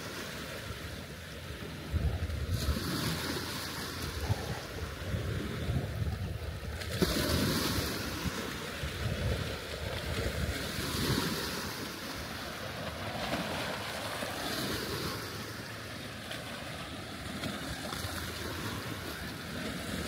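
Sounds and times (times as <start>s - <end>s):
waves washing on rocky shore: 0.0s - 20.0s
wind rumbling on microphone: 1.5s - 15.4s.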